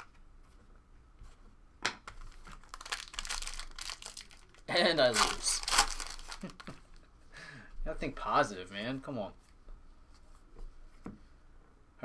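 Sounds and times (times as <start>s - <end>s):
foil wrapper crinkling: 2.2s - 6.8s.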